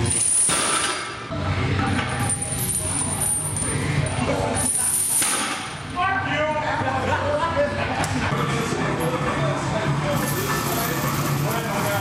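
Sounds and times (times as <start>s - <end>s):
chains clanking and rattling: 1.8s - 4.0s, 10.2s - 12.0s.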